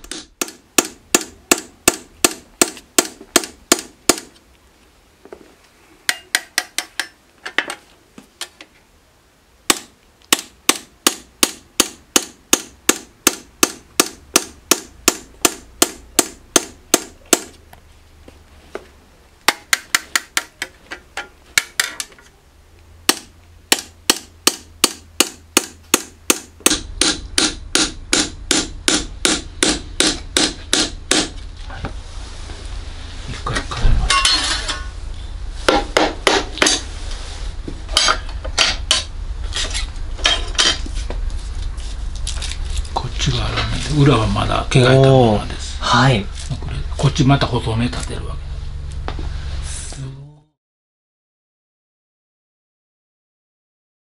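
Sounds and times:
hammer tapping chisel into metal: 6.1 - 7.8, 19.5 - 22.2.

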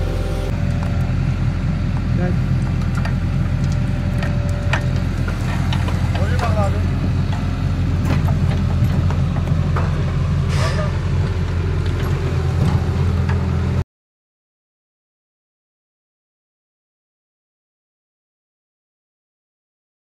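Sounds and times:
excavator diesel engine running: 0.0 - 13.8.

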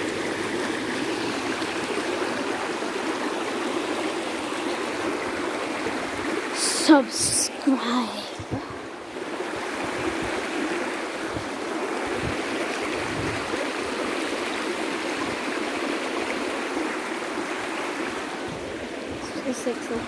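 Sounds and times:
stream burbling over rocks: 0.0 - 20.0.

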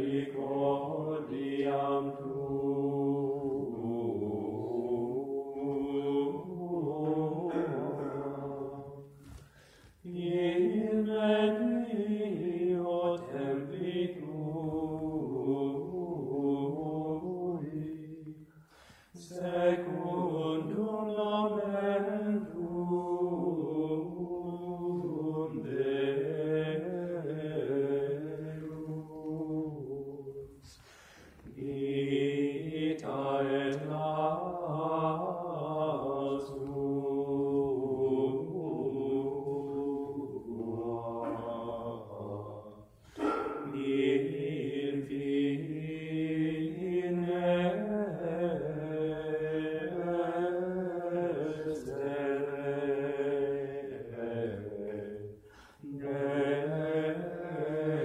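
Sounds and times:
latin chant singing: 43.2 - 47.6.

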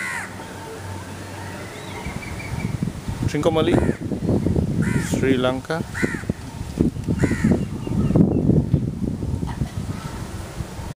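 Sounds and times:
crows cawing: 0.0 - 0.4, 3.7 - 4.1, 4.8 - 5.2, 5.9 - 6.4, 7.2 - 7.6.

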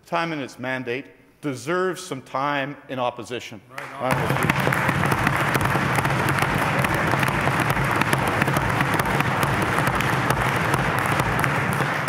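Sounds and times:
crowd applauding: 3.9 - 12.0.

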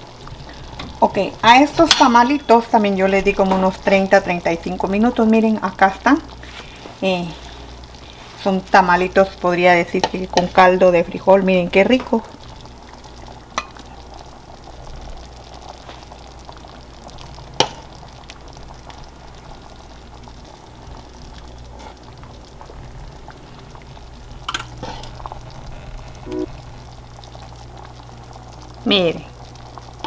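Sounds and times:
broth bubbling in a pot: 0.0 - 30.0.

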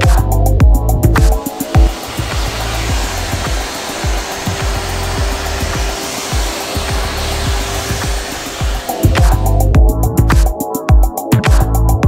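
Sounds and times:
music with bass beat: 0.0 - 12.0
vacuum cleaner running: 0.9 - 10.3.

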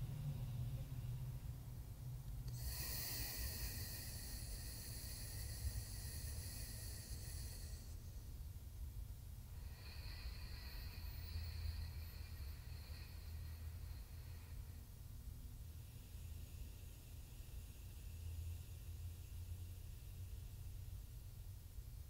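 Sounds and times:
low room hum: 0.0 - 22.0
deep breaths through nostril: 2.4 - 8.5, 9.5 - 21.3.

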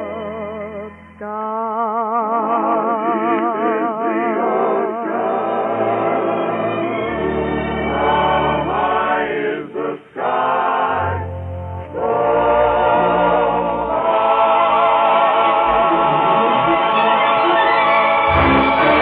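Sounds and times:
dance orchestra playing chords: 15.4 - 19.0.

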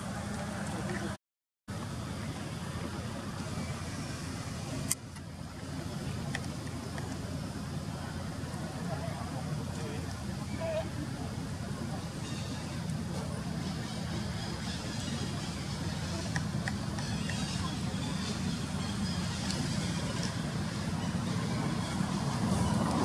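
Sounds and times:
low outdoor rumble: 0.0 - 23.0.

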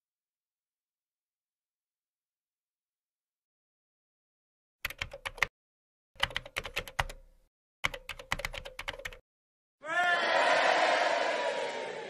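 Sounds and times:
keyboard typing clicks: 4.8 - 5.5, 6.2 - 9.2
loud crowd noise: 9.8 - 12.0.

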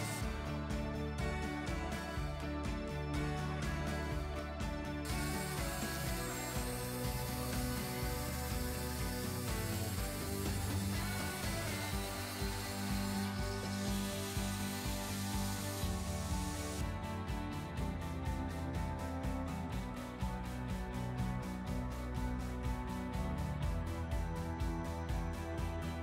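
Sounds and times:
angle grinder cutting steel: 0.0 - 0.4, 5.0 - 16.8
background music with beat: 0.0 - 26.0.

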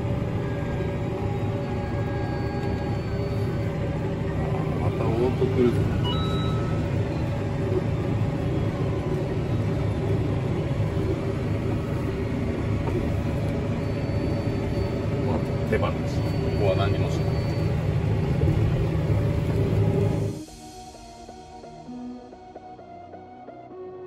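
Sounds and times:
tractor engine droning: 0.0 - 24.0.

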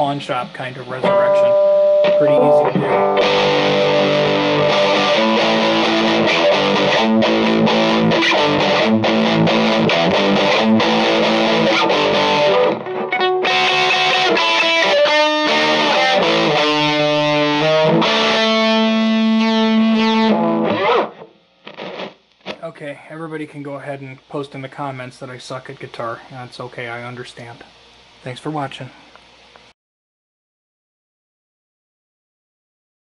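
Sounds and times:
electric guitar chords: 0.8 - 22.6.

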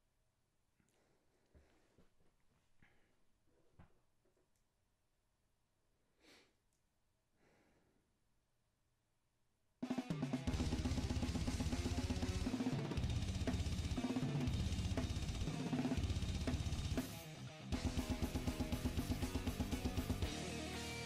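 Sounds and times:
drum kit blast beats: 9.8 - 21.0
metal band playing: 9.8 - 21.0.

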